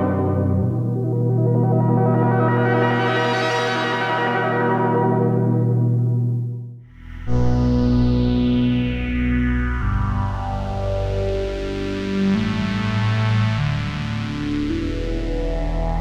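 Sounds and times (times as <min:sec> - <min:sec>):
phased synthesizer notes: 0:00.0 - 0:16.0.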